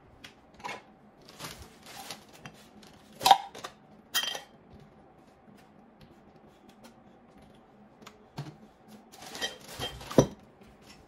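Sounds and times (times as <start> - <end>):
objects clattering: 9.2 - 11.0.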